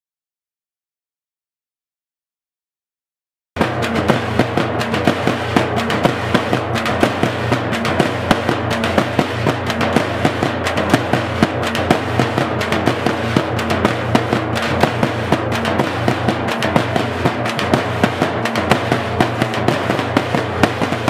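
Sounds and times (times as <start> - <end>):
frame drums beaten with sticks: 3.6 - 21.0.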